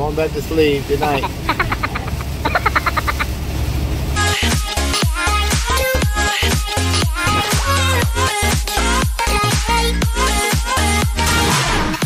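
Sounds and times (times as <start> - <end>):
truck engine and road noise: 0.0 - 8.3
woman laughing: 1.0 - 3.4.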